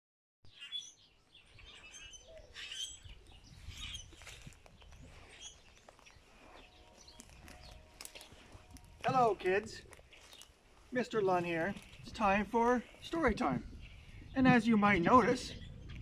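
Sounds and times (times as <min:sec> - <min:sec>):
small birds chirping: 0:00.5 - 0:16.0
low wind rumble: 0:02.2 - 0:16.0.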